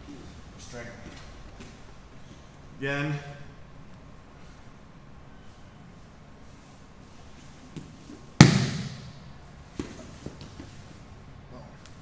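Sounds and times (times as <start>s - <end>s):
body slapping a mat: 7.8s - 9.1s, 9.7s - 10.6s.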